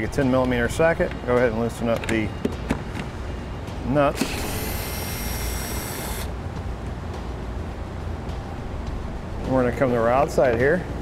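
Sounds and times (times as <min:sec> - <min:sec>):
low steady hum: 0:00.0 - 0:11.0
cordless drill whirring: 0:04.2 - 0:06.3.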